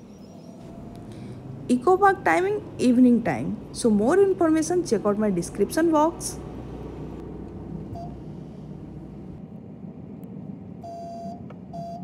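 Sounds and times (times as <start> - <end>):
car road and engine rumble: 0.0 - 11.9.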